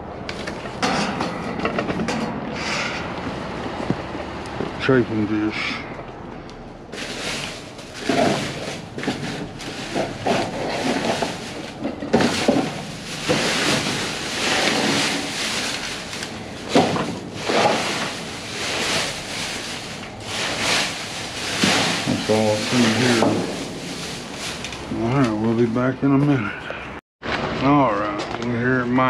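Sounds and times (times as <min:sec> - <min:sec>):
knocks and scrapes in metal dumpster: 0:00.7 - 0:02.4, 0:07.0 - 0:24.8
plastic bags rustling and crinkling: 0:06.9 - 0:25.9.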